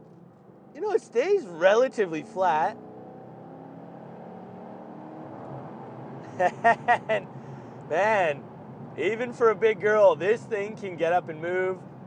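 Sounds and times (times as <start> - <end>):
car engine drone accelerating: 0.0 - 12.0
road noise: 0.0 - 12.0.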